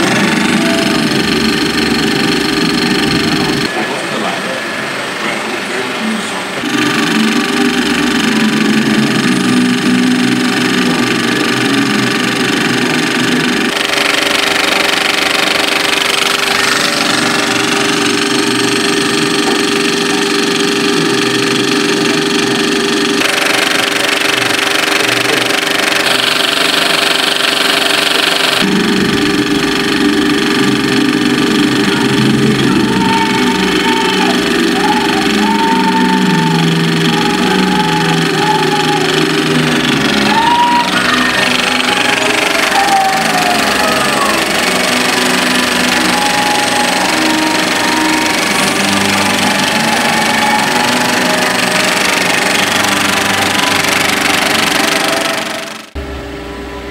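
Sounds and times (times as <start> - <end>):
film projector mechanical hum: 0.0 - 56.8.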